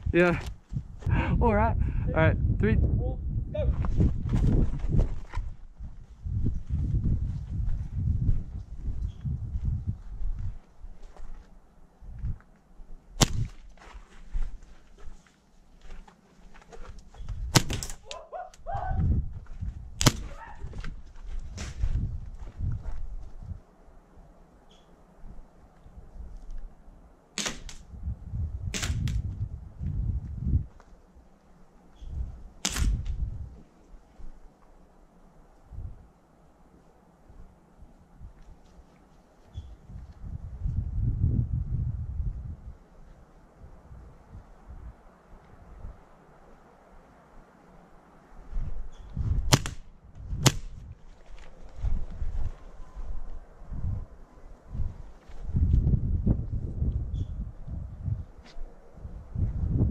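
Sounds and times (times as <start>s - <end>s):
footsteps and movement thumps: 3.7s - 12.5s, 13.2s - 17.9s, 18.8s - 23.6s, 50.1s - 52.8s
scuffing and handling noise: 3.8s - 12.7s, 13.4s - 17.5s, 19.0s - 23.6s, 38.2s - 40.3s, 50.2s - 53.4s, 54.8s - 55.9s, 58.4s - 58.7s
airsoft pistol shots: 17.5s - 18.0s, 20.0s - 20.4s, 27.4s - 27.8s, 49.5s - 49.8s, 50.4s - 50.7s.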